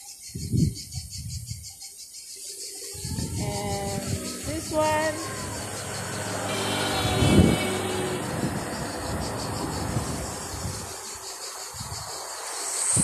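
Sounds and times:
outdoor road noise: 2.8 - 13.0
motor scooter passing: 3.2 - 12.5.

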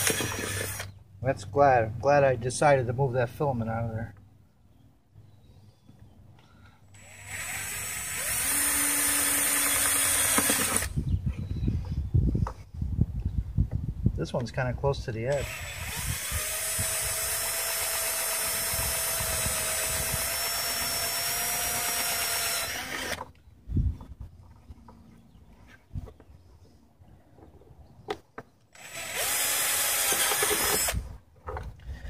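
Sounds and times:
cordless drill boring plastic: 0.0 - 0.9, 7.0 - 11.0, 15.3 - 23.2, 28.8 - 31.0.

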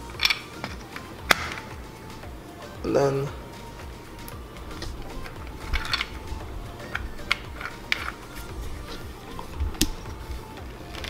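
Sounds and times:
quiet background music: 0.0 - 11.0
plastic clicking and scraping: 4.7 - 10.2.

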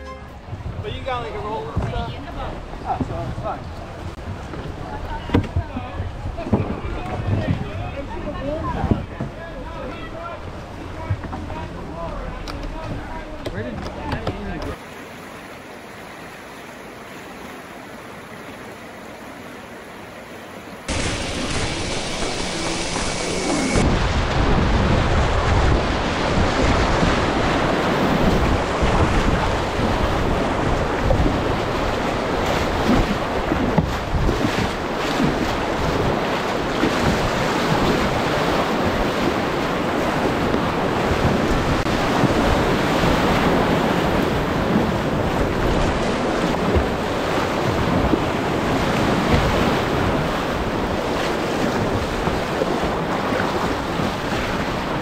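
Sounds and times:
wind buffeting microphone: 0.4 - 14.8, 20.9 - 55.0
whitewater rapids splashing: 20.9 - 55.0.

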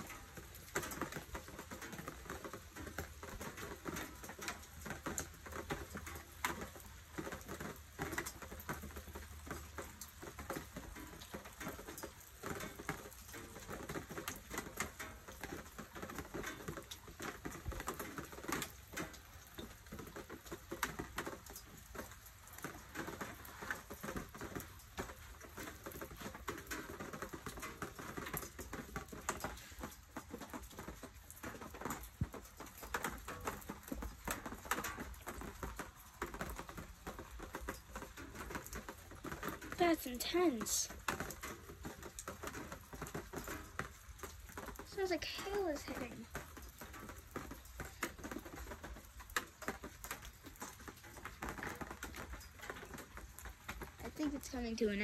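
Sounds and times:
hail ticking on hard surfaces: 0.0 - 55.0
heavy rain pattering: 0.0 - 55.0.

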